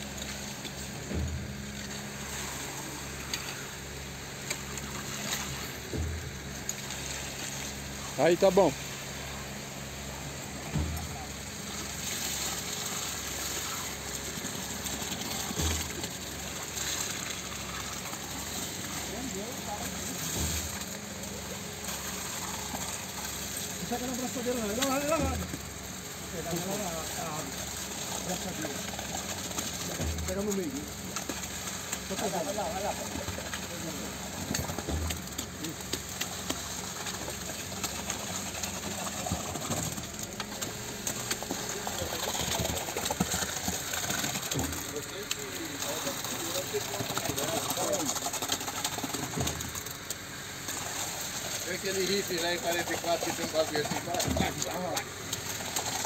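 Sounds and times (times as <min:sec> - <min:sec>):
concrete pouring from hose: 0:00.0 - 0:56.0
concrete pump running: 0:00.0 - 0:56.0
workers' voices: 0:07.6 - 0:56.0.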